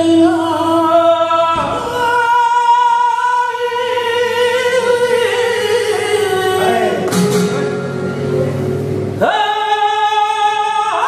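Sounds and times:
man singing flamenco: 0.0 - 8.0, 9.2 - 11.0.

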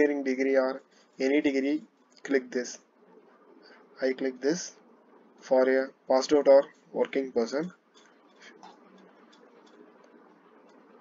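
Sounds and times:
computer mouse clicking: 8.0 - 11.0.

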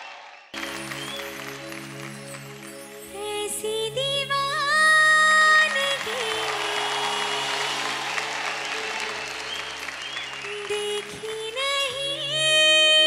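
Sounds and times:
audience applause: 0.0 - 2.8, 5.7 - 12.0
backing music: 0.6 - 12.7.

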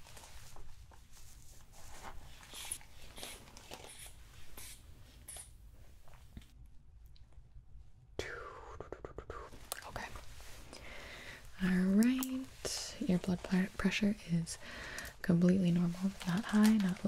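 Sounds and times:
hand bulb air puffs: 3.2 - 5.5.

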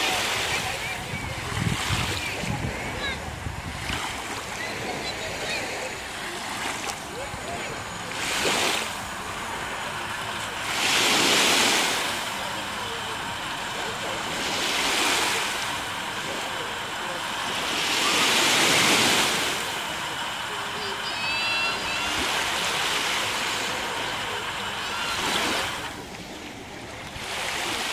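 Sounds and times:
small waves washing onto shore: 0.0 - 27.9.

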